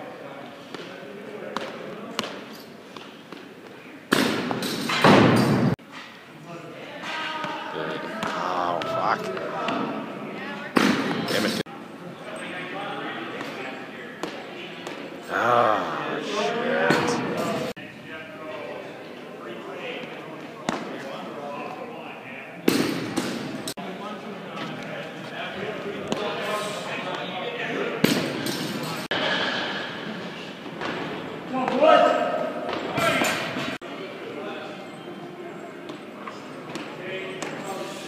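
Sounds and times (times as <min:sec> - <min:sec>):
indistinct voices echoing: 0:06.6 - 0:11.7, 0:15.0 - 0:19.0.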